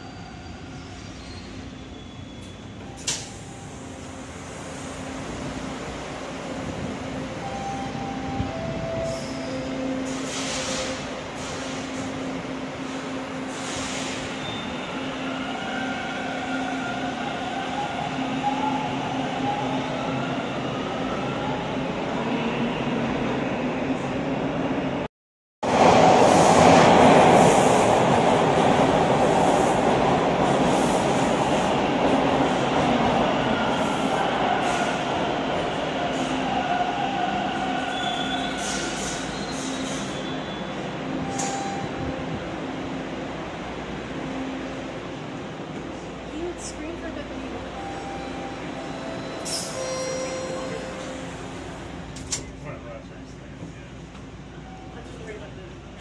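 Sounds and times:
subway train running: 0.0s - 56.0s
train pulling in and slowing: 0.0s - 56.0s
train whining tones: 7.2s - 21.6s.

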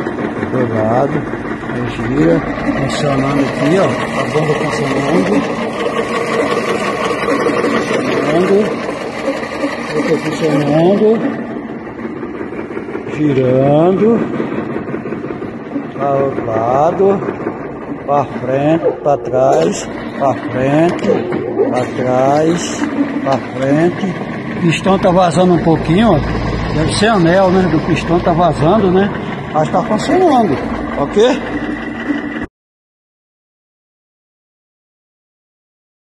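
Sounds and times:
hydraulic pump buzzing hum: 0.0s - 32.5s
man speaking: 0.6s - 8.9s, 9.9s - 11.4s, 13.1s - 14.4s, 15.8s - 31.6s.

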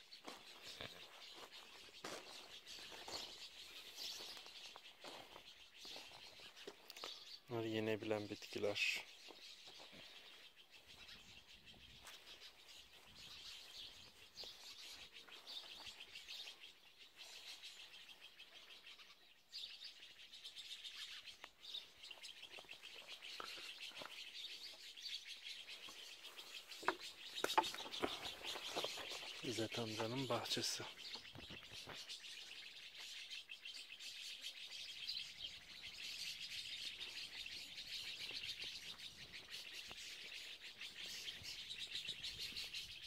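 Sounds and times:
small birds chirping: 0.0s - 43.0s.

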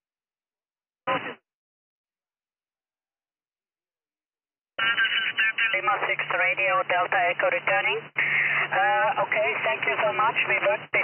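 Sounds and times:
radio operator's voice: 4.8s - 11.0s.

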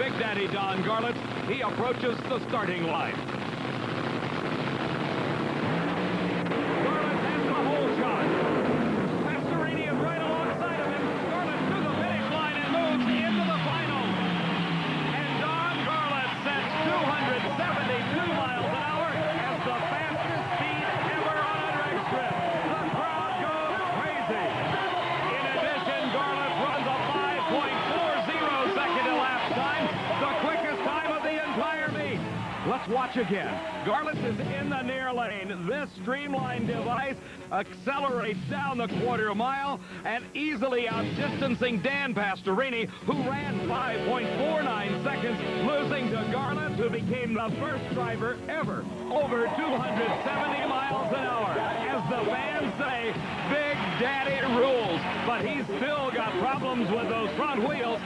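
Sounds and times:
dragster engine at full throttle: 3.2s - 19.6s
crowd cheering and shouting: 4.4s - 35.4s, 43.2s - 58.0s.

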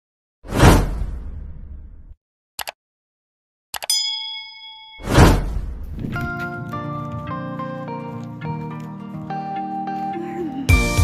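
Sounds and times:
notification bell ding: 3.8s - 5.3s.

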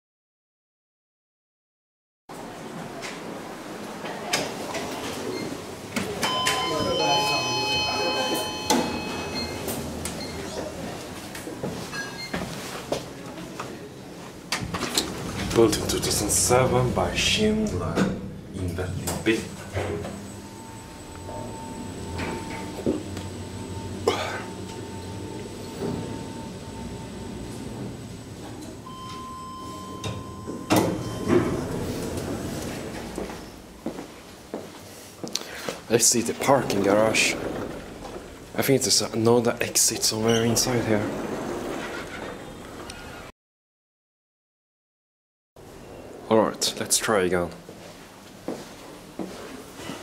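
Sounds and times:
elevator doors sliding open: 2.7s - 13.0s, 14.4s - 34.4s, 35.5s - 43.3s
elevator door clunk: 4.4s - 12.5s, 14.5s - 33.7s, 36.2s - 43.3s
elevator arrival chime: 6.2s - 10.9s, 19.1s - 33.6s, 36.4s - 38.4s
steady electronic tone: 15.6s - 32.4s.

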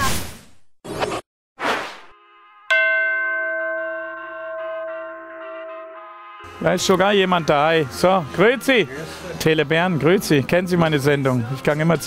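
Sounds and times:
electronic doorbell chime: 2.7s - 6.4s.

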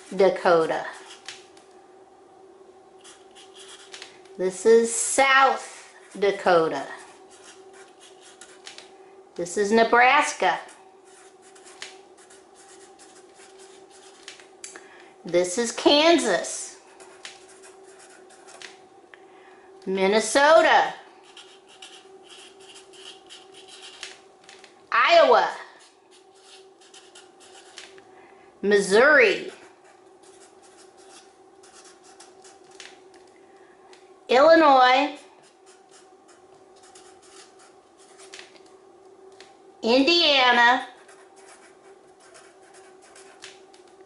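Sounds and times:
marker rubbing on paper: 3.0s - 4.0s, 10.6s - 14.3s, 21.2s - 24.1s, 25.8s - 27.8s, 29.3s - 32.6s, 40.9s - 43.6s.

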